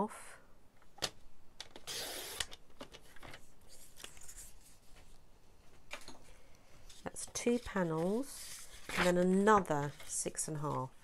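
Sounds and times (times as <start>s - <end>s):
paper rustling and clicks: 6.9s - 10.8s.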